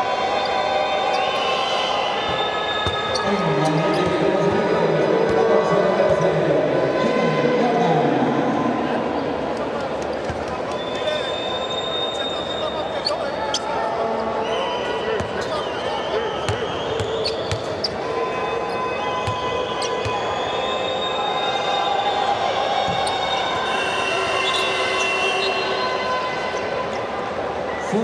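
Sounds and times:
arena crowd voices: 0.0s - 28.0s.

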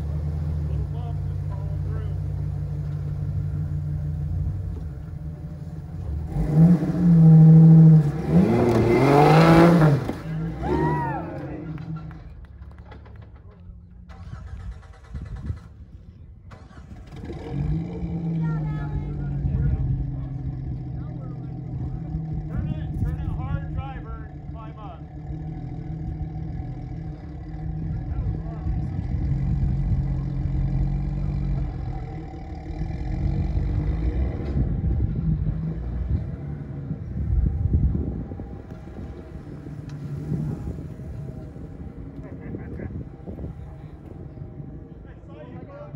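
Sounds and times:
off-road vehicle engine revving: 0.0s - 13.3s, 13.9s - 45.9s
onlookers calling: 8.3s - 13.4s.

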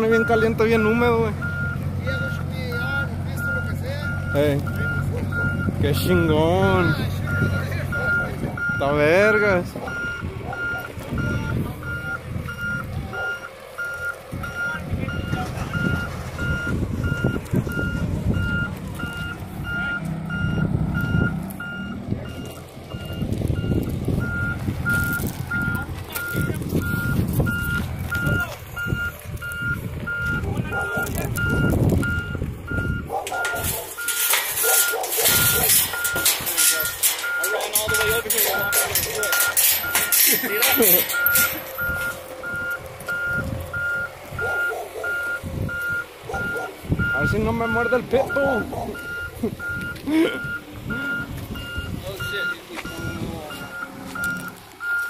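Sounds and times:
backup alarm beeping: 0.0s - 55.0s
diesel engine running: 0.0s - 55.0s.

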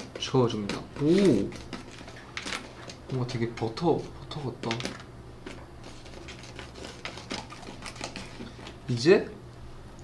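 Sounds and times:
plastic spoon scraping paste: 0.0s - 8.9s.

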